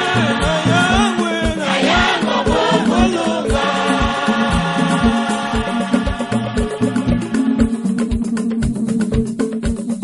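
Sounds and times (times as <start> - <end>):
choir singing: 0.0 - 7.9
steady low beat: 0.0 - 9.4.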